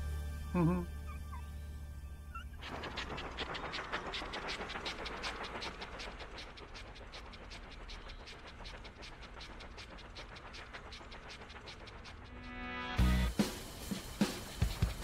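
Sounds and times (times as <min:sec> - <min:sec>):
cartoon train clatter: 0:02.3 - 0:15.0.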